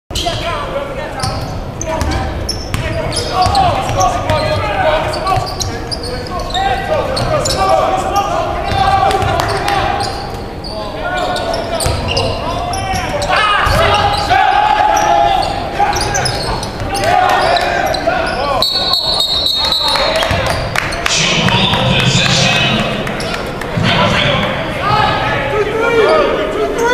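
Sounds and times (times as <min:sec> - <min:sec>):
voices echoing in hall: 0:00.1 - 0:26.9.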